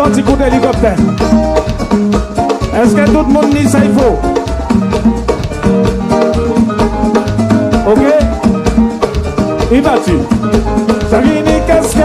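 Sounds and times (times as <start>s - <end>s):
live band playing dance music: 0.0s - 12.0s.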